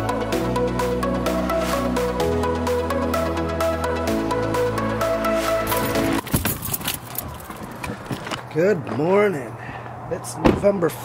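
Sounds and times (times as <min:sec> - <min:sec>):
background music: 0:00.0 - 0:06.9
handling clicks and rustling: 0:05.7 - 0:09.1.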